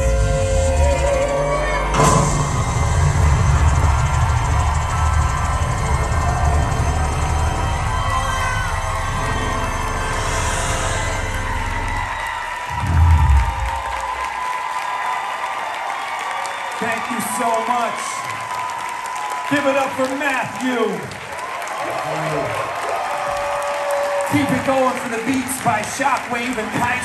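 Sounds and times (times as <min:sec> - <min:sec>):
audience cheering: 0:00.0 - 0:27.0
loud low hit: 0:12.7 - 0:14.2.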